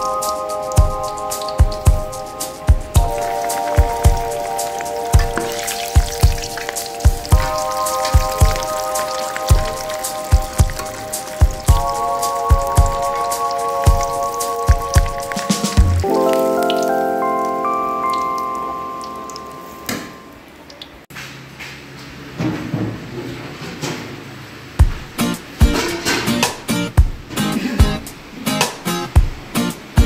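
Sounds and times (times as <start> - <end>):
background music with steady beat: 0.0 - 20.4, 24.8 - 30.0
hot oil sizzling and bubbling: 0.0 - 21.1, 24.4 - 27.2.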